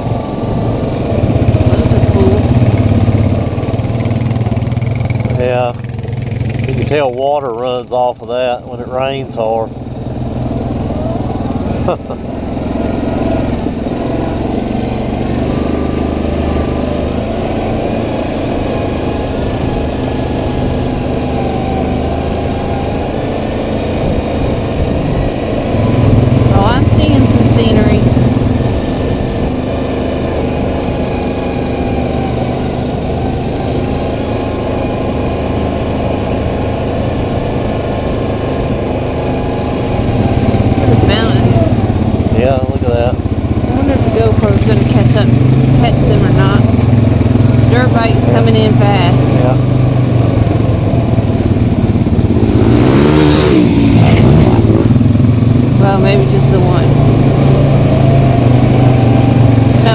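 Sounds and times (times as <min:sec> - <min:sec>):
atv engine running: 0:00.0 - 0:59.9.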